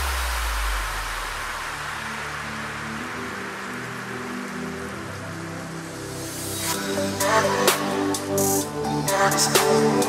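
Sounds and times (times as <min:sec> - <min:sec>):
white-noise hiss: 0:00.0 - 0:10.0.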